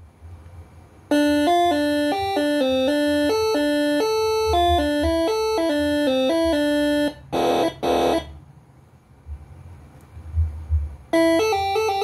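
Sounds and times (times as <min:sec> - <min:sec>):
air horn playing melody: 0:01.1 - 0:08.4
short noisy horn blasts: 0:06.6 - 0:08.4.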